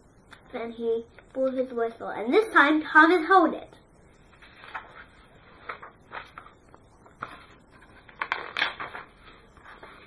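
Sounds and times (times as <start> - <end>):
book pages turning: 4.3 - 10.0
papery rustles and taps: 5.6 - 10.0.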